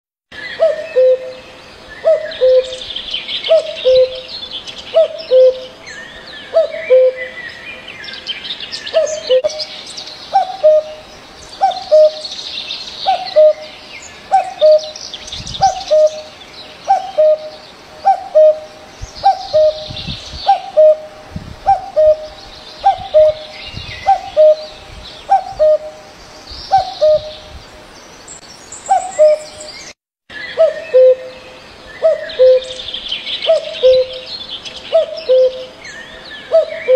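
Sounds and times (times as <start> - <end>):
small birds chirping: 0.3 - 36.9
cuckoo calling: 0.4 - 7.7, 8.8 - 27.6, 28.8 - 36.9.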